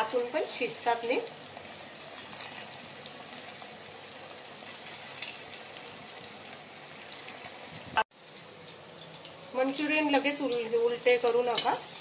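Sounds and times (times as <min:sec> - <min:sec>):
balls deep-frying in hot oil: 0:00.0 - 0:12.0.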